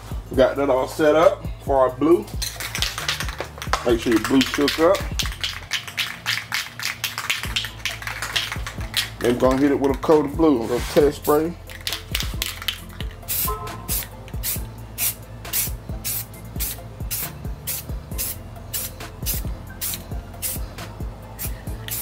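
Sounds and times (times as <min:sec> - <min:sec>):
background music with beat: 0:00.0 - 0:22.0
aerosol spray can spraying: 0:02.6 - 0:10.1, 0:11.2 - 0:20.6, 0:21.4 - 0:22.0.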